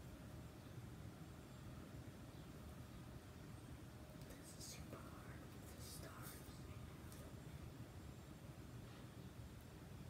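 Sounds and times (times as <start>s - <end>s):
low room noise: 0.0s - 10.0s
person whispering: 4.2s - 7.4s.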